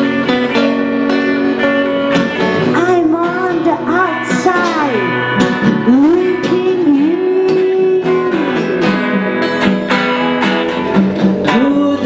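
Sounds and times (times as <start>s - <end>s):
acoustic guitar strumming: 0.0s - 12.0s
bass line: 0.0s - 12.0s.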